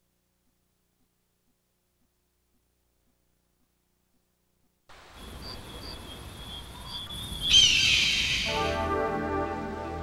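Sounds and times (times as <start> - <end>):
music: 8.5 - 10.0.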